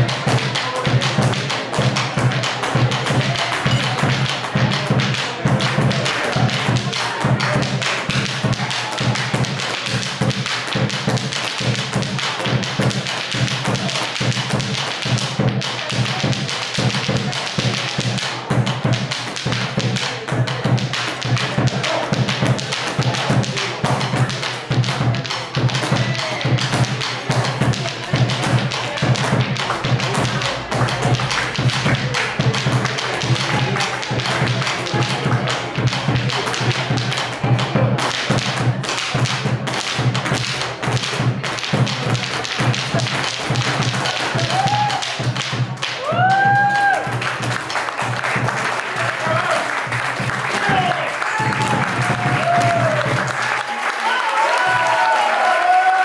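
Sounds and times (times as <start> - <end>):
steady drum beat: 0.0 - 53.5
dancer's feet stamping and tapping: 0.0 - 56.0.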